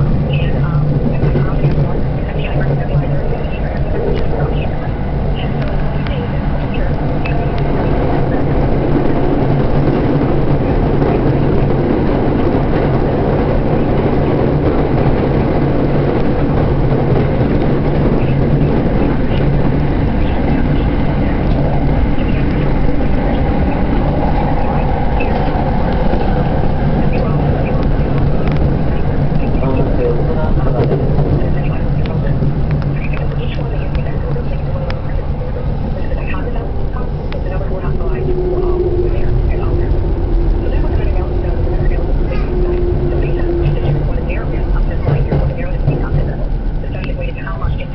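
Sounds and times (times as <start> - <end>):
train rumbling with low hum: 0.0 - 47.9
train whine: 0.0 - 47.9.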